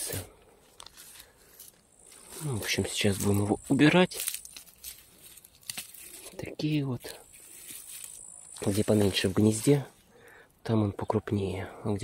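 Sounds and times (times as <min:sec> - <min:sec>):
dry onion skins rustling: 0:00.6 - 0:10.0.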